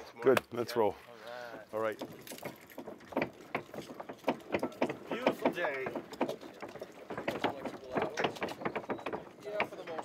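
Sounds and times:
footsteps on wooden planks: 1.6s - 10.0s.

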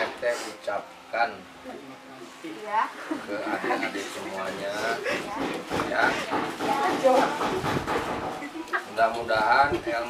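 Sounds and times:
rough background noise: 0.0s - 10.0s.

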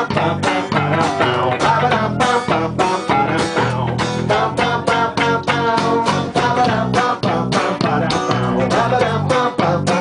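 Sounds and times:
guitars strumming chords: 0.0s - 10.0s.

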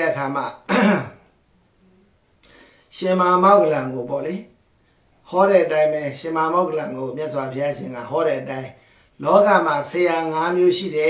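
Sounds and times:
man speaking: 0.0s - 1.1s, 2.9s - 4.6s, 5.2s - 11.0s
man clearing throat: 0.7s - 1.3s.

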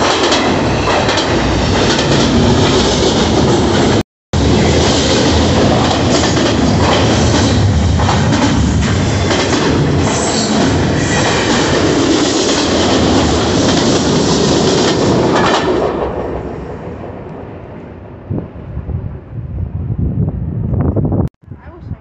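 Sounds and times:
freight train wheels on rails: 0.0s - 21.1s.

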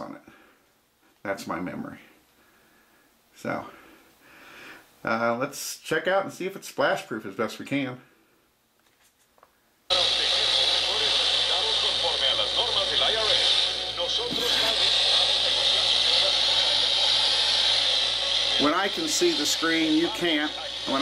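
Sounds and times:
tv broadcast soundtrack: 0.0s - 8.3s, 9.4s - 21.0s
static hiss: 9.9s - 21.0s.

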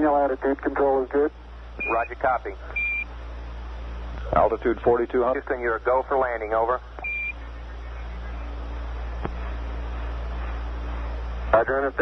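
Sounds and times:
man's voice over radio: 0.0s - 2.8s, 4.3s - 8.5s, 11.5s - 12.0s
radio hiss: 0.0s - 3.0s, 4.1s - 12.0s
low radio hum: 0.0s - 12.0s.

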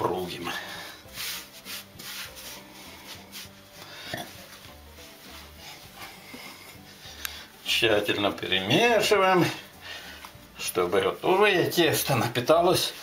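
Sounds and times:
hands kneading dough: 0.0s - 13.0s.

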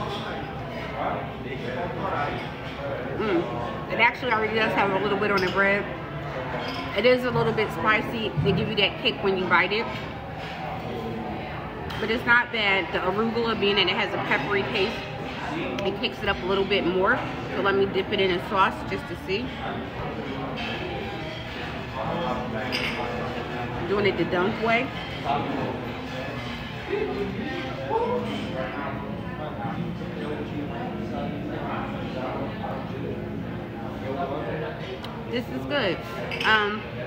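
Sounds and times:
indistinct background chatter: 0.0s - 37.0s
murmur of distant voices: 0.0s - 37.0s.

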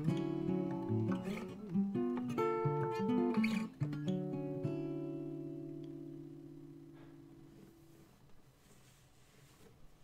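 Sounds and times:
acoustic guitar chord ringing: 0.0s - 8.2s.

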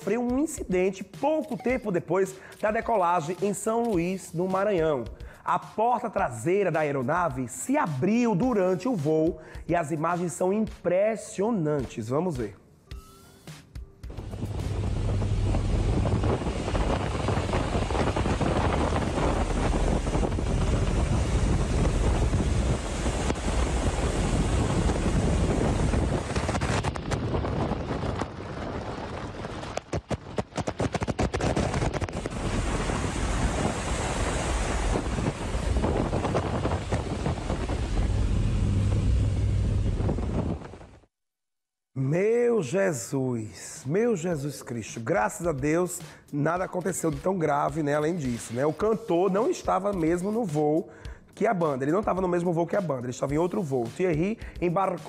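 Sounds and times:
rushing wind in plane cabin: 14.1s - 41.1s
wind buffeting microphone: 14.1s - 41.1s.

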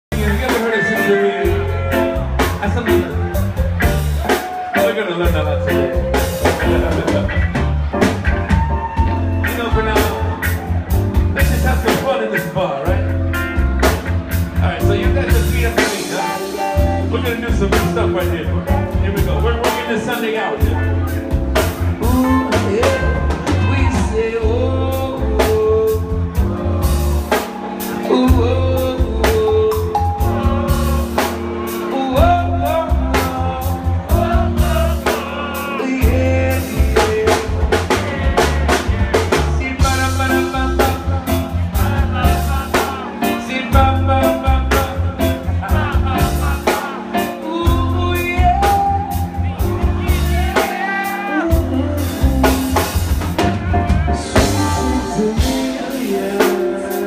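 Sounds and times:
drum kit: 0.0s - 57.0s
heavy bass line: 0.0s - 57.0s
keyboard: 0.0s - 57.0s
reggae band playing: 0.0s - 57.0s
person singing: 0.1s - 14.0s, 14.6s - 57.0s
electric guitar: 0.2s - 57.0s.

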